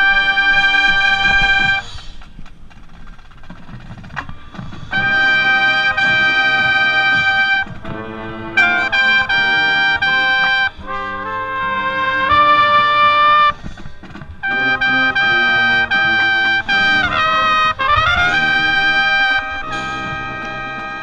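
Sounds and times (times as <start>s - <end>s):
lead trumpet playing: 0.0s - 2.0s, 4.9s - 13.7s, 14.4s - 21.0s
marching brass section: 0.0s - 2.0s, 4.0s - 21.0s.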